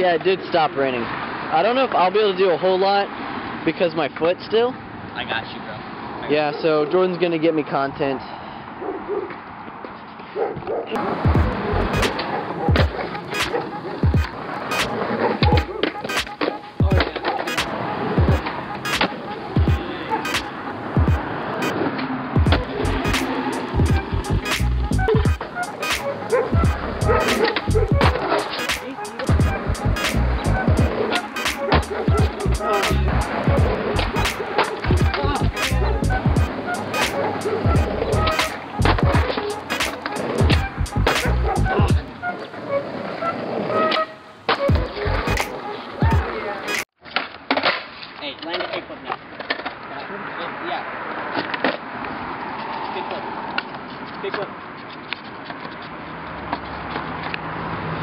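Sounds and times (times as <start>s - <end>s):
skateboard wheels rolling on concrete: 0.0s - 7.9s, 8.8s - 58.0s
skateboard clacks: 10.6s - 29.3s, 30.0s - 42.1s.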